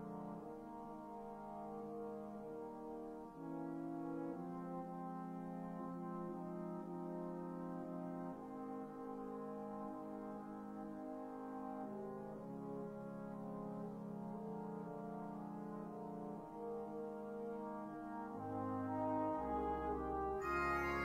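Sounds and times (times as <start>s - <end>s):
horn melody: 0.0s - 21.0s
sampled brass band passage: 0.0s - 21.0s.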